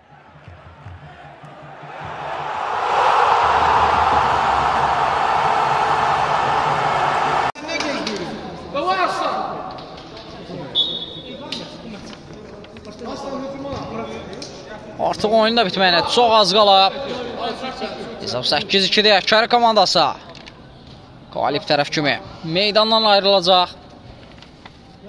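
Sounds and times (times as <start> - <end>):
men calling out in a hall: 1.7 - 9.9
rushing noise: 2.1 - 7.5.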